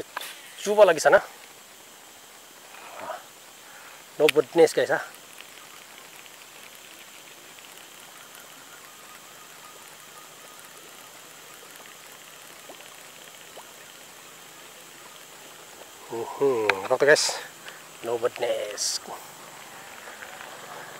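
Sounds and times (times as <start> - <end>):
faint outdoor hiss: 0.0 - 20.9
faint ticks: 0.0 - 20.9.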